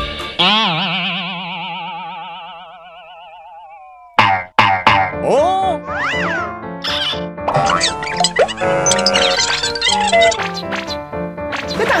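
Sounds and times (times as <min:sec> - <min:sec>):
warbling cartoon boing tone: 0:00.4 - 0:05.2.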